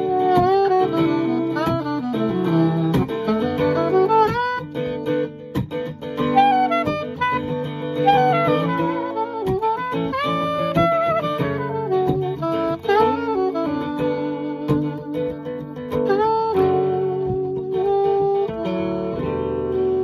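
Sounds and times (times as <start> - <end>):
acoustic guitar strumming chords: 0.0 - 20.0
saxophone melody: 0.0 - 20.0.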